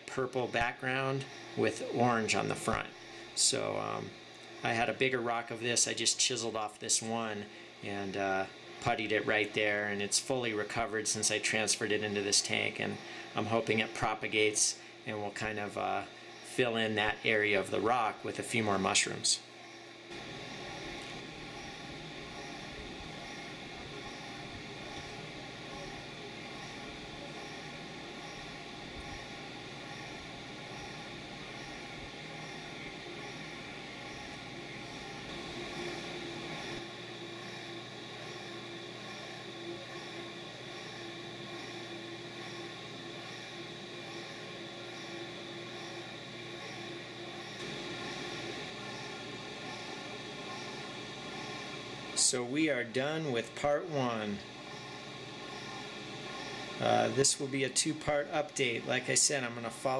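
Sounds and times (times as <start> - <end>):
aquarium equipment humming: 0.0 - 59.9.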